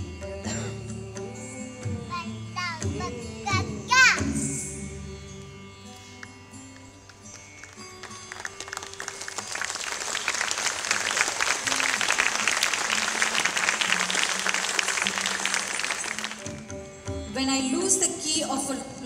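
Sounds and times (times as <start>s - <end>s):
audience applauding: 7.3s - 16.8s.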